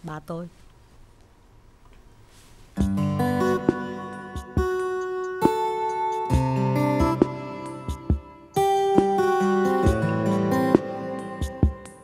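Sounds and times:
acoustic guitar chords: 2.8 - 12.0
keyboard chords: 2.8 - 12.0.

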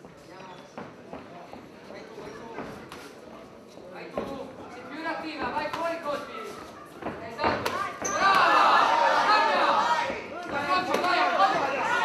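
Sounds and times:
people shouting: 7.7 - 12.0.

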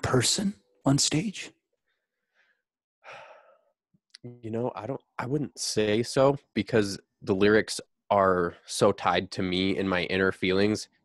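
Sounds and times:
man breathing: 1.9 - 3.8.

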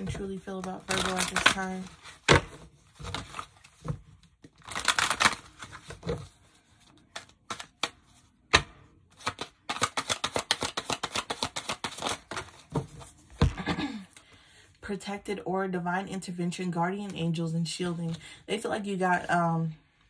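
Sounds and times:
cards being shuffled: 0.0 - 13.6.

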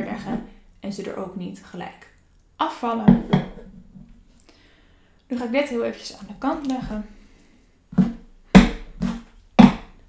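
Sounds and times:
wooden knocks on a tabletop: 3.1 - 3.8.

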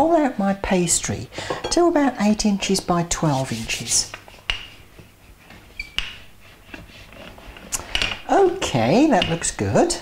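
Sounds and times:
rolling pin rolling pastry: 3.2 - 10.0.

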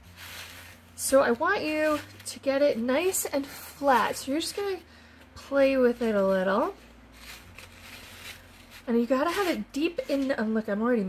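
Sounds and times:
hands rustling and scraping sand: 0.0 - 4.8, 5.7 - 10.4.

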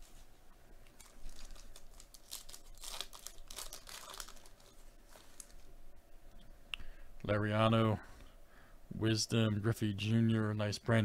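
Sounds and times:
foil wrapper crinkling and tearing: 1.0 - 5.7.

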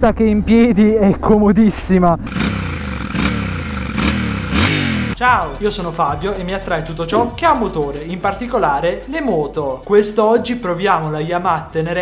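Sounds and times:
motorcycle engine revving: 2.3 - 5.2.

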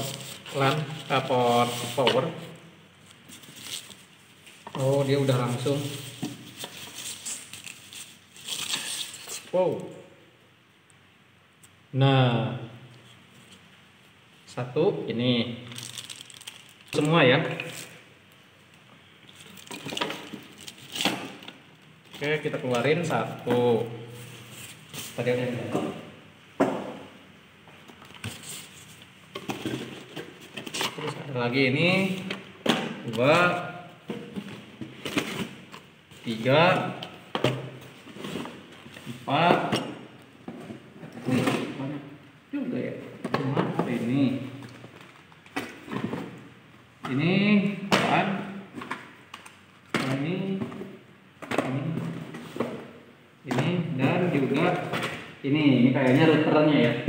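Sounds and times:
cardboard rustling: 0.0 - 2.2
plastic and cardboard rustling: 0.0 - 9.5, 15.7 - 18.0, 19.3 - 26.0, 27.8 - 31.3, 31.9 - 41.8
plastic wrapping rustling: 0.0 - 9.5, 15.7 - 18.1, 19.2 - 22.5
boxes knocking on wooden table: 26.6 - 27.1.

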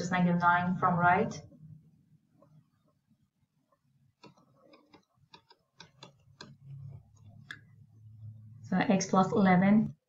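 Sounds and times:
stylus tapping on tablet screen: 4.0 - 7.7.

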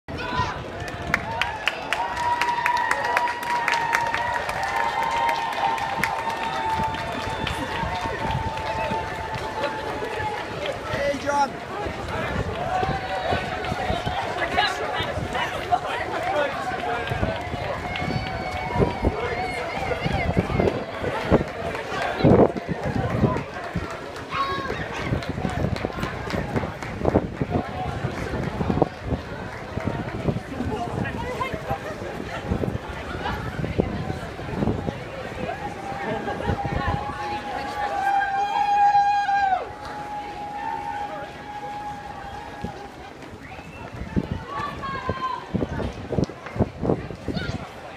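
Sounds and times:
bystanders cheering: 0.1 - 28.4, 35.2 - 45.8
runners' footsteps on tarmac: 0.1 - 47.9.

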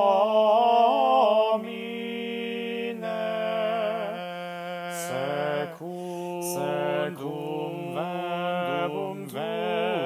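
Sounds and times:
vocal ensemble singing in harmony: 0.0 - 10.0.

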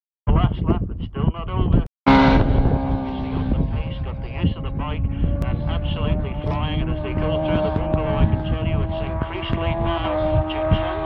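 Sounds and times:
racing motorcycle passing: 2.1 - 11.0.

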